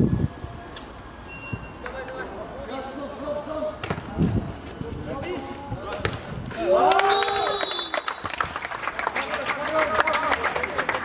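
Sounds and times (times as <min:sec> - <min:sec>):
football being kicked: 0:03.8 - 0:04.1, 0:05.8 - 0:06.3
footballers shouting: 0:05.1 - 0:08.0.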